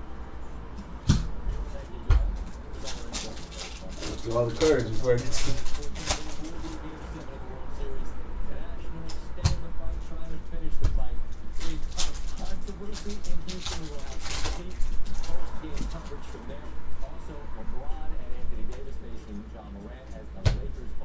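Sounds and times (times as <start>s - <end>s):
tv voices: 0.0s - 21.0s
foil wrapper crinkling and tearing: 2.7s - 6.8s, 11.6s - 16.4s.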